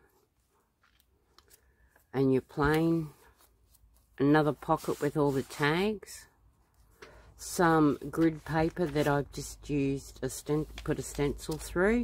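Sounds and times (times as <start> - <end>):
paper pages handled: 7.8 - 9.5, 10.4 - 12.0.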